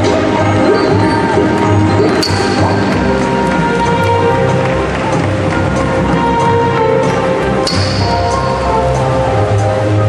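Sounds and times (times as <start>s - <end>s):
music with long held notes: 0.0s - 10.0s.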